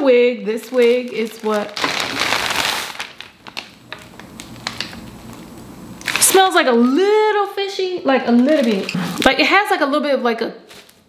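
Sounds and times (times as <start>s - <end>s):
plastic packaging crinkling: 0.5s - 9.6s, 10.7s - 11.0s.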